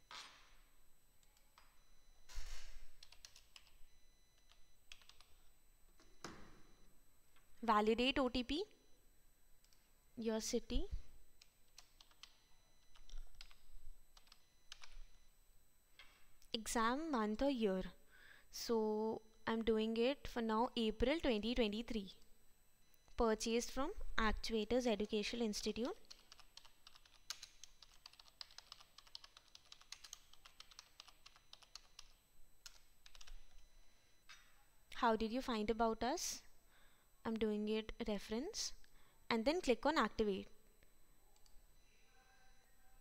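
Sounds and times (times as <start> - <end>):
faint keyboard typing: 3.0 - 5.5, 11.4 - 15.2, 25.0 - 33.7.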